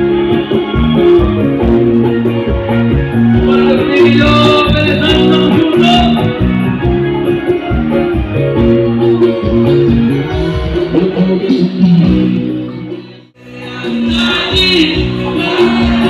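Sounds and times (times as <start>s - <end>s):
live band music with steady beat: 0.0s - 16.0s.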